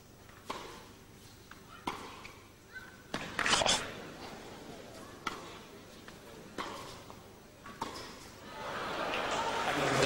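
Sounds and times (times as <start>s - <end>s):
quiet hall ambience: 0.0s - 10.0s
racket hitting tennis ball: 0.3s - 4.1s, 4.9s - 8.3s.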